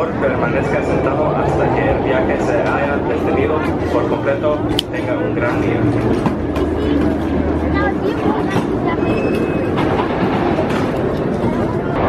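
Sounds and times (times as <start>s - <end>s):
roller coaster rumbling on rails: 0.0s - 12.0s.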